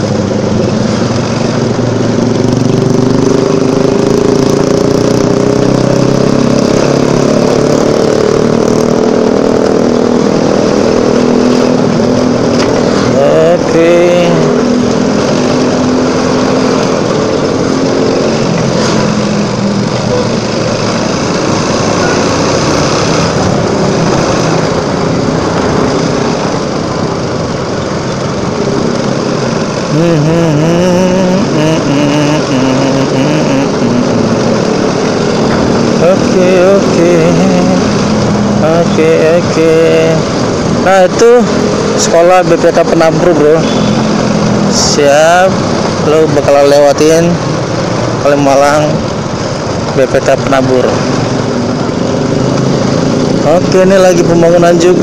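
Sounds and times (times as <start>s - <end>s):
motorcycle engine running: 0.0s - 42.0s, 50.7s - 55.0s
rush of wind: 0.0s - 54.3s
road noise: 0.0s - 55.0s.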